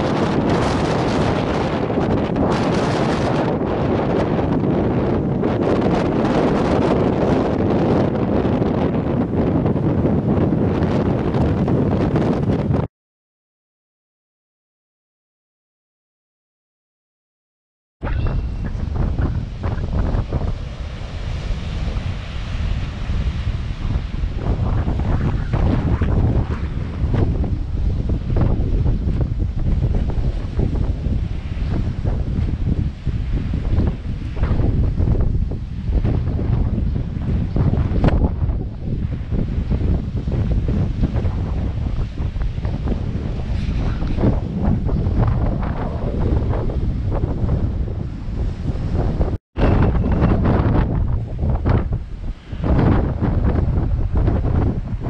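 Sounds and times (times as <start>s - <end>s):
surf breaking on rocky shore: 0.0s - 12.9s, 18.0s - 55.0s
wind buffeting microphone: 0.0s - 12.9s, 18.0s - 55.0s.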